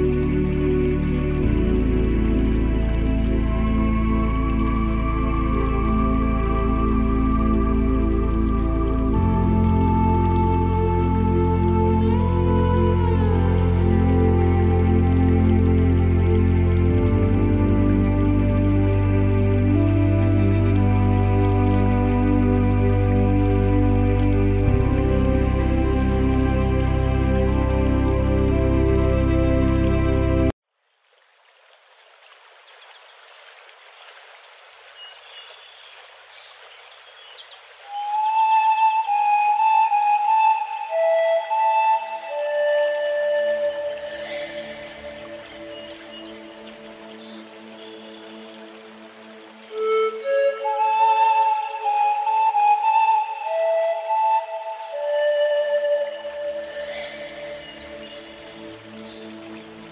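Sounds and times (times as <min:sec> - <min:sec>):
pan flute notes: 0:00.0 - 0:30.5, 0:37.9 - 0:47.4, 0:49.6 - 0:59.8
soft sustained accompaniment: 0:00.0 - 0:30.6, 0:37.8 - 0:59.9
running water: 0:00.0 - 0:59.9
pan flute held note: 0:41.9 - 0:45.5, 0:55.6 - 0:58.3.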